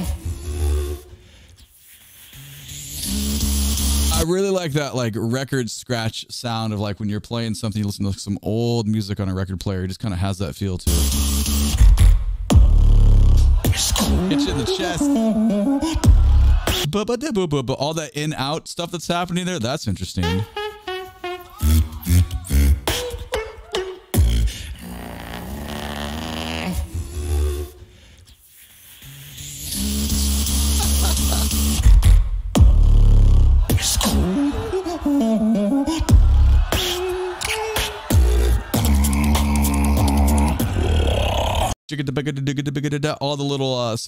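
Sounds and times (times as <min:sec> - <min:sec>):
person beatboxing: 0:00.0 - 0:04.3, 0:10.9 - 0:17.0, 0:21.3 - 0:41.8.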